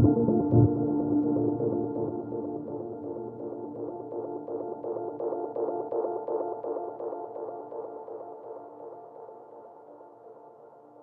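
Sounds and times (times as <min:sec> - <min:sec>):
downtempo electronic music: 0:00.0 - 0:09.4.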